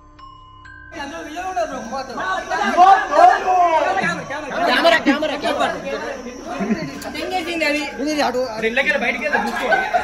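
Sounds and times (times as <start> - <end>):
overlapping chatter of voices: 1.0 - 10.0.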